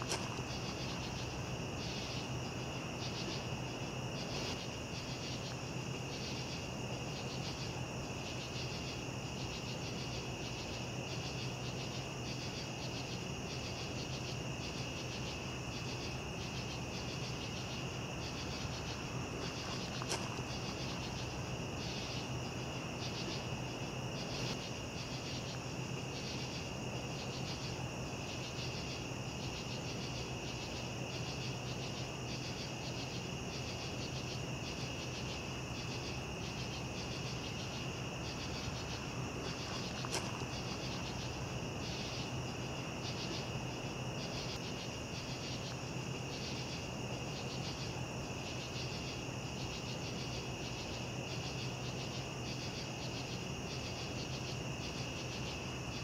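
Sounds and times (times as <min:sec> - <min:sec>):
insects trilling: 0:00.0 - 0:56.0
pulsing insect chirp: 0:00.0 - 0:56.0.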